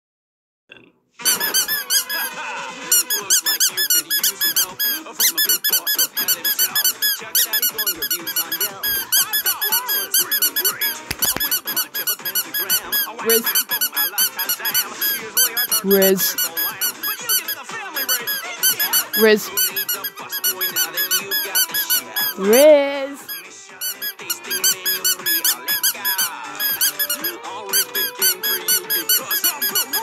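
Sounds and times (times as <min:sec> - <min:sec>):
rubber duck squeak toy: 0:01.2 - 0:30.0.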